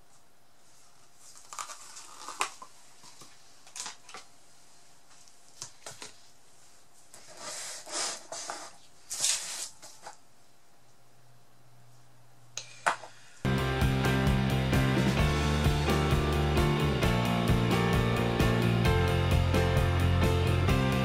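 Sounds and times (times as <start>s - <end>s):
short rustling scrapes: 7.0s - 10.1s.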